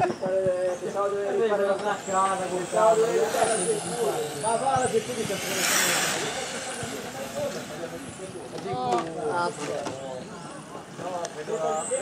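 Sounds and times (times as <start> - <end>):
electric model car passing: 1.4 - 8.4.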